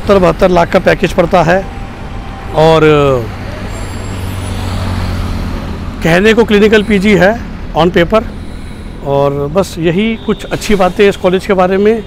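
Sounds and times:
highway traffic road noise: 0:00.0 - 0:12.0
vehicle engine humming: 0:00.0 - 0:12.0.

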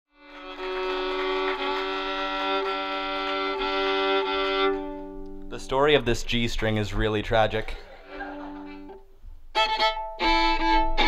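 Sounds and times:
fiddle bowing a held chord: 0:00.1 - 0:06.0, 0:08.1 - 0:11.0.

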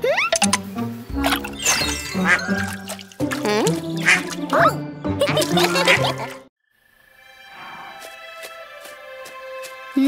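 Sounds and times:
cartoon background music: 0:00.0 - 0:06.5
cartoon duck quacking: 0:03.5 - 0:06.4.

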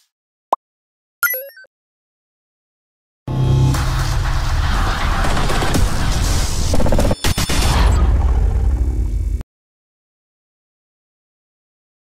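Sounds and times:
deep cinematic rumble: 0:07.6 - 0:09.4.

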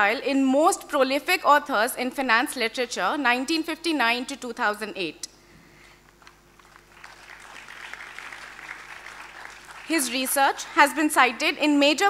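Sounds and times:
audience applauding: 0:06.2 - 0:11.3.

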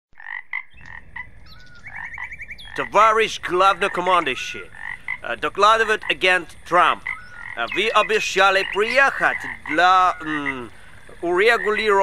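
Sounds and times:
frog chirps: 0:00.2 - 0:12.0
frogs croaking: 0:00.2 - 0:12.0.

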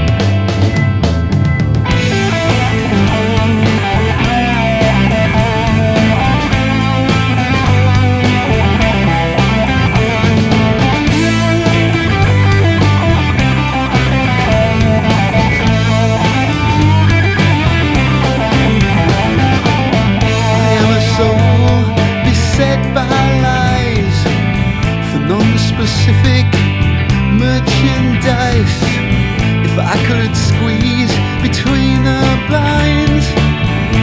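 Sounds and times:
instrumental rock music: 0:00.0 - 0:34.0.

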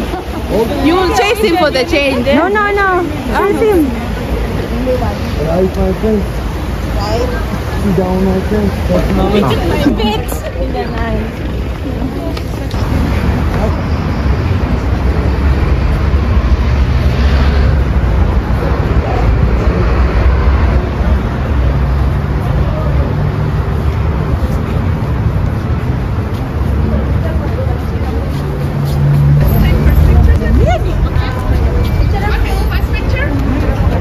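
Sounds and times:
indistinct voices: 0:00.0 - 0:34.0
low street rumble: 0:00.0 - 0:34.0
vehicle engines passing: 0:00.0 - 0:34.0.

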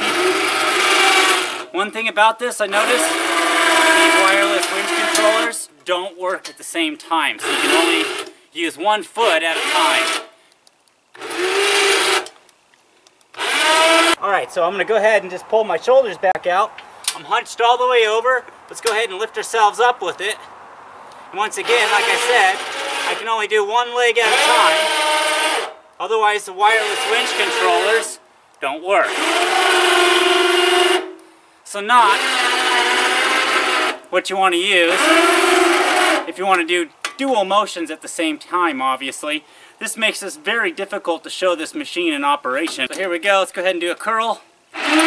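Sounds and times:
electric winch motors running: 0:00.0 - 0:01.7, 0:02.7 - 0:05.6, 0:07.4 - 0:08.3, 0:09.2 - 0:10.3, 0:11.2 - 0:12.3, 0:13.4 - 0:14.2, 0:21.5 - 0:23.3, 0:24.2 - 0:25.8, 0:26.6 - 0:28.2, 0:29.0 - 0:31.1, 0:32.0 - 0:34.1, 0:34.9 - 0:36.3, 0:44.8 - 0:45.0.

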